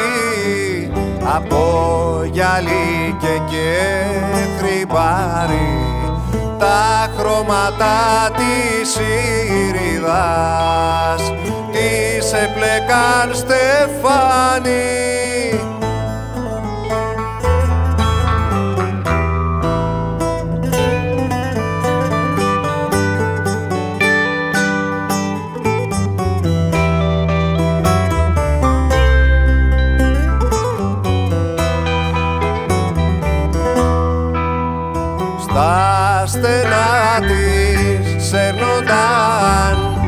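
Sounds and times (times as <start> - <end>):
plucked string instruments: 0.0 - 40.0
steady bass line: 0.0 - 40.0.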